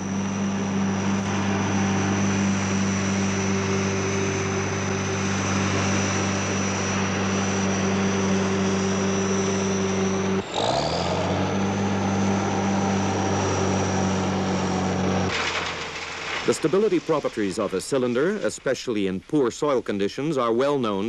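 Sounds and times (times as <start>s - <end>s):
crane engine hum with high whine: 0.0s - 17.7s.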